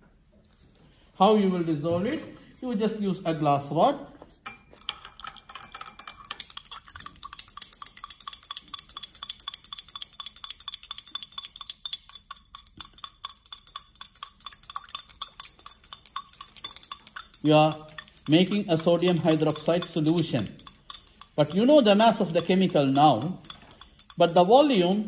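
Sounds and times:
glass rod clinking in beaker: 0:04.4 - 0:25.0.

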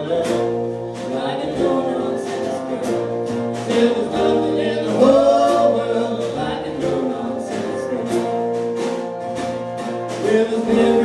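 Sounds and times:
male and female voices singing: 0:00.0 - 0:08.6, 0:10.1 - 0:11.0
acoustic guitar: 0:00.0 - 0:11.0
drums: 0:00.0 - 0:11.0
upright bass: 0:00.0 - 0:11.0.

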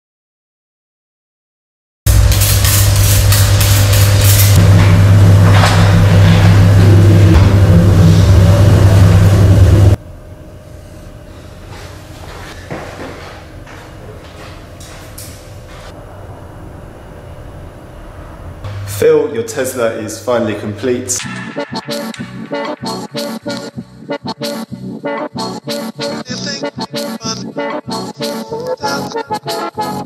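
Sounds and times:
loud low hum: 0:02.1 - 0:12.1, 0:15.2 - 0:27.6
spray bottle spritzing glass: 0:02.2 - 0:04.6.

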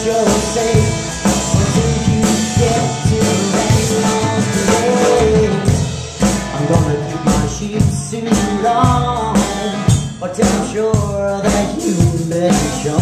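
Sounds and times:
drum kit beat: 0:00.0 - 0:13.0
man singing: 0:00.0 - 0:13.0
upright bass: 0:00.0 - 0:13.0.

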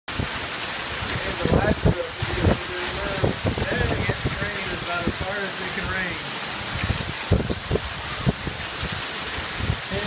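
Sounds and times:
heavy rain downpour: 0:00.1 - 0:10.0.

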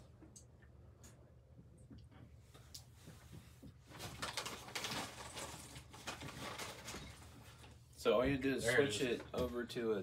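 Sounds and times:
hands handling cables: 0:02.7 - 0:07.8.

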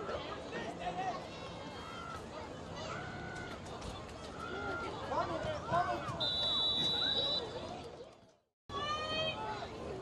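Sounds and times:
referee's whistle: 0:06.2 - 0:07.5.

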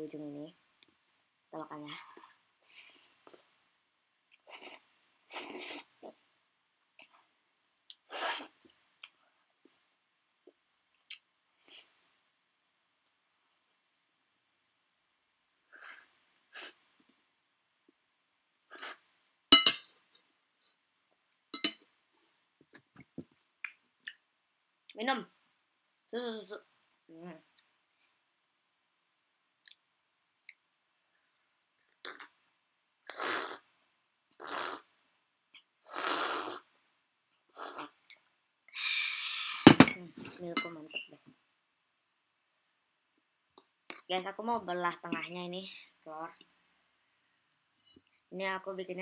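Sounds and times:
slurp: 0:04.4 - 0:06.2, 0:32.0 - 0:32.3, 0:33.1 - 0:33.7, 0:34.4 - 0:34.9, 0:35.9 - 0:36.7, 0:37.5 - 0:38.0
fork clinking on ceramic plate: 0:19.6 - 0:19.9, 0:21.6 - 0:21.8.

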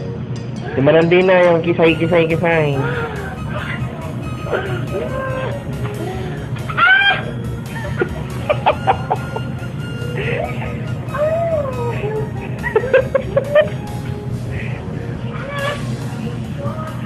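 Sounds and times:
woman squealing and shrieking: 0:04.5 - 0:05.6, 0:06.6 - 0:07.4, 0:10.4 - 0:12.4, 0:15.3 - 0:15.9.

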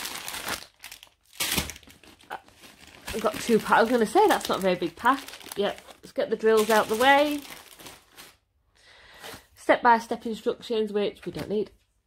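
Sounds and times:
plastic bag crinkling: 0:00.0 - 0:08.5.

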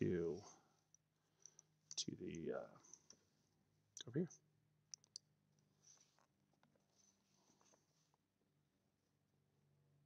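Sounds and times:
computer mouse clicks: 0:04.9 - 0:05.3.

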